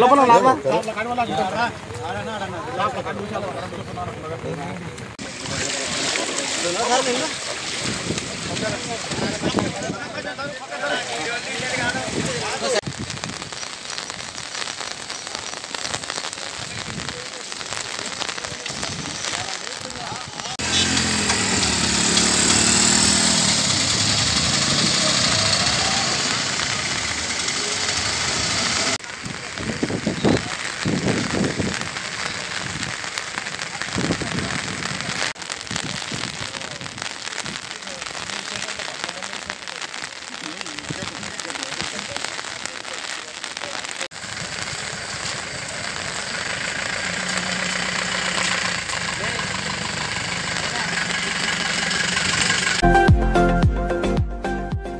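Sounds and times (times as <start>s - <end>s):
rain: 0.0s - 52.8s
road noise: 0.0s - 52.8s
bus engines running: 20.6s - 29.0s, 44.4s - 52.8s.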